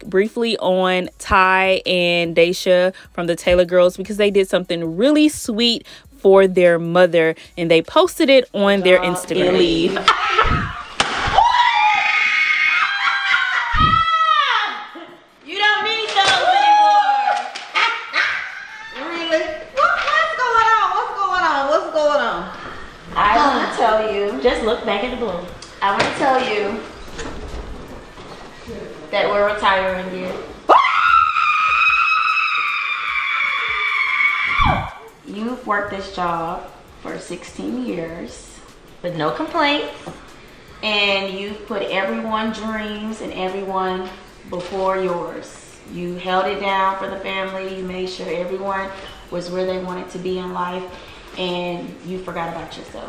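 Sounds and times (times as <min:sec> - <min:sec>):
woman screaming with excitement: 0:10.1 - 0:15.2, 0:16.4 - 0:19.2, 0:30.7 - 0:35.0.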